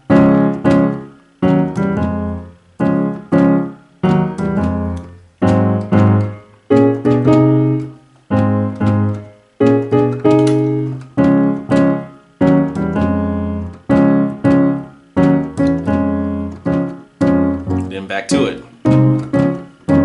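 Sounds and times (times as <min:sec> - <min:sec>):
gospel piano chords: 0:00.0 - 0:20.0.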